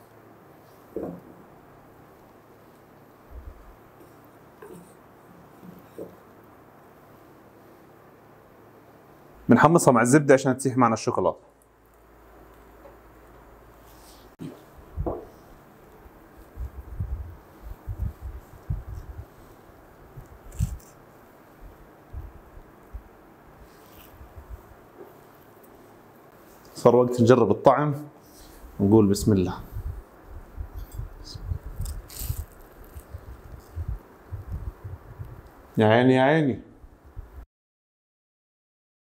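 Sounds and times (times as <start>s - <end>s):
bread roll crackling: 11.8s - 26.8s, 30.0s - 35.7s.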